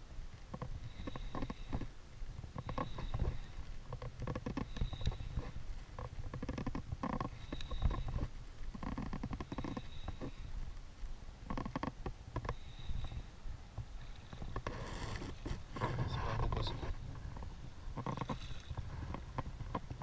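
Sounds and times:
low microphone rumble: 0.0s - 20.0s.

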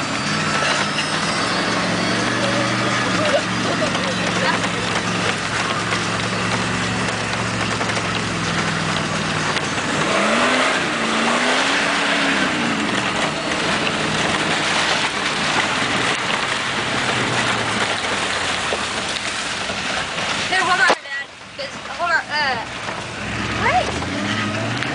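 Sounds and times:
vehicle engine revving: 0.0s - 24.9s.

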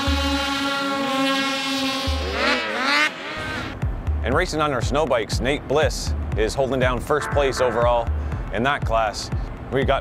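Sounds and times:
snowmobile engines revving: 0.0s - 3.8s.

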